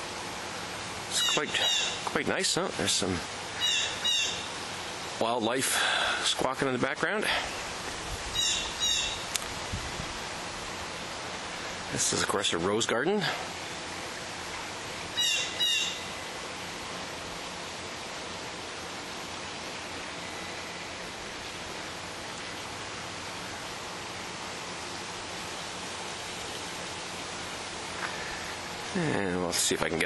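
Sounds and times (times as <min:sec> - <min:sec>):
steady outdoor hiss: 0:00.0 - 0:30.0
short loud bird calls: 0:01.2 - 0:02.0, 0:03.6 - 0:04.6, 0:08.4 - 0:09.3, 0:15.2 - 0:16.2.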